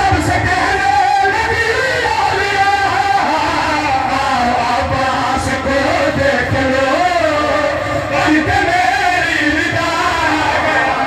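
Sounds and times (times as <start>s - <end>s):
man singing over loudspeaker: 0.0s - 11.0s.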